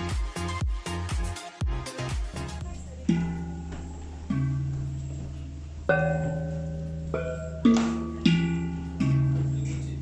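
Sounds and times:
bossed gongs struck with stick: 0:03.0 - 0:10.0.

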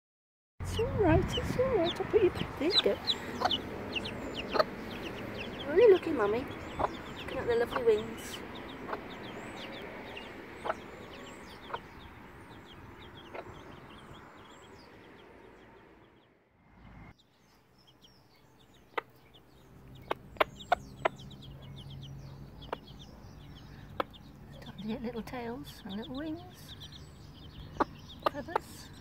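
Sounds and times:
chicks peeping: 0:00.6 - 0:29.0.

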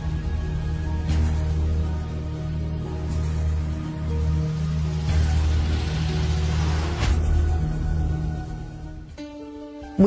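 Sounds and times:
low drone score: 0:00.0 - 0:09.9
rushing hiss: 0:03.6 - 0:09.0.

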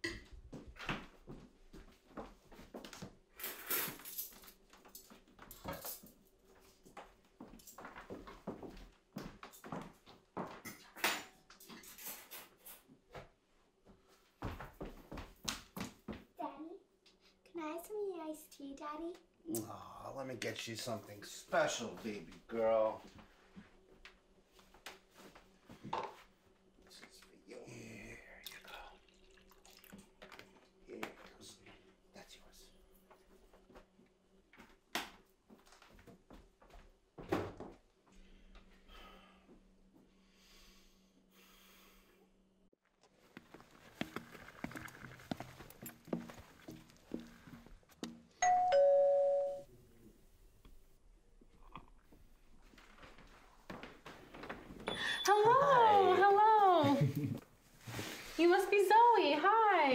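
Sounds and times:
liquid pouring into plastic cup: 0:28.4 - 0:30.7
two-note doorbell chime: 0:48.4 - 0:49.7.

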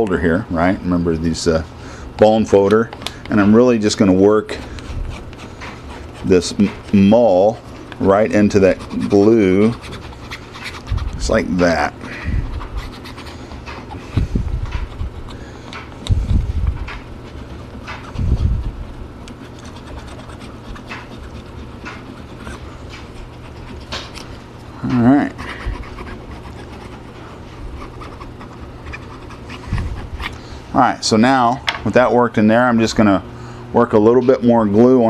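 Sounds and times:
bone folder rubbing cloth: 0:03.7 - 0:30.7
dog panting: 0:08.0 - 0:24.4, 0:25.2 - 0:30.4.

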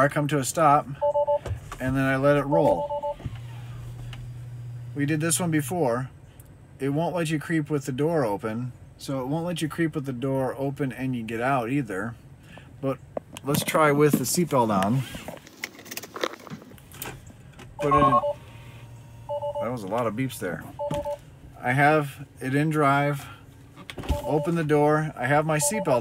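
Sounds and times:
two-tone warning beep: 0:01.0 - 0:01.5, 0:02.5 - 0:03.2, 0:17.8 - 0:18.5, 0:19.2 - 0:19.8, 0:20.8 - 0:21.2, 0:24.1 - 0:24.7, 0:25.5 - 0:26.0.

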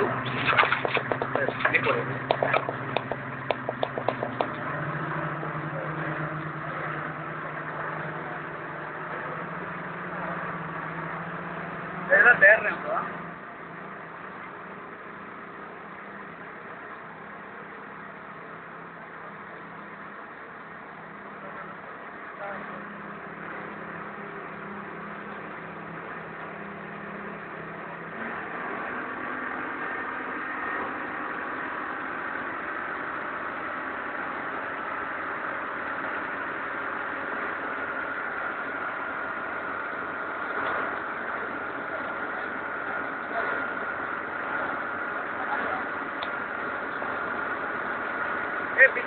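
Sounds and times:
indistinct voices: 0:00.0 - 0:09.5
outdoor background hum: 0:00.0 - 0:49.0.

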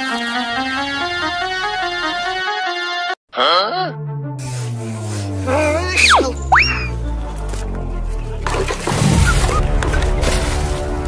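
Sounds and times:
background music: 0:00.0 - 0:11.0
cartoon whistle glides: 0:05.7 - 0:07.0.

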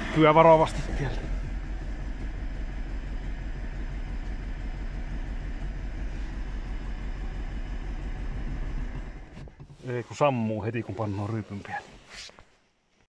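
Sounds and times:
car engine running: 0:00.0 - 0:12.0.

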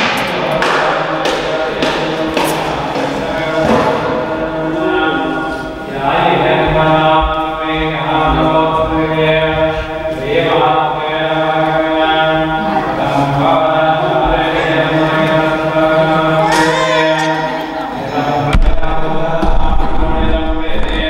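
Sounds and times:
man chanting: 0:00.0 - 0:21.0.

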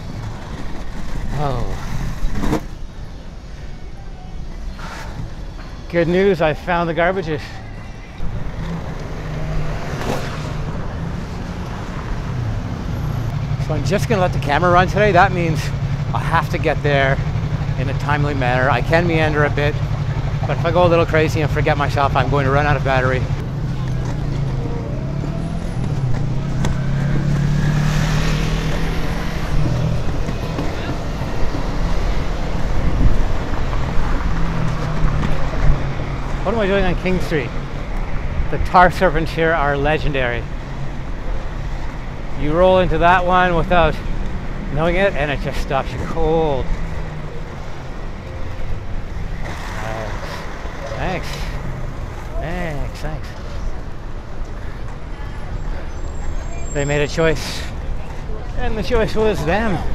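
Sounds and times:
skate wheels rolling on brick: 0:00.0 - 0:02.8, 0:28.7 - 0:35.8
city street traffic: 0:00.0 - 0:59.9
vehicle engine humming: 0:00.0 - 0:59.9.

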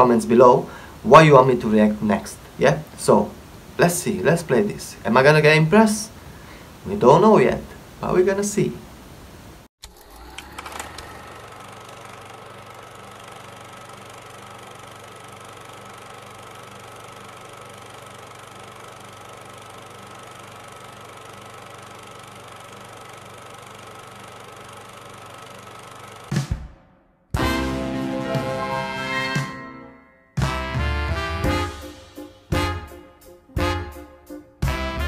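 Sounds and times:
steady hum and hiss: 0:00.0 - 0:09.7.

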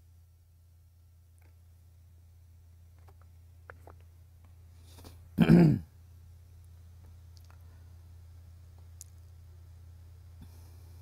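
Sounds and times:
man clearing his throat: 0:05.4 - 0:05.9.

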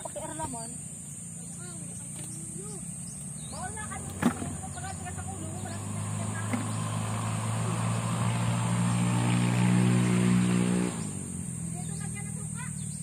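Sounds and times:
vehicle engine running: 0:00.0 - 0:13.0.

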